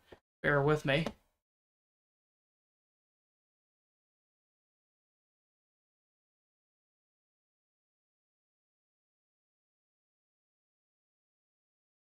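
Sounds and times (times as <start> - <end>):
person speaking: 0.4 - 1.2.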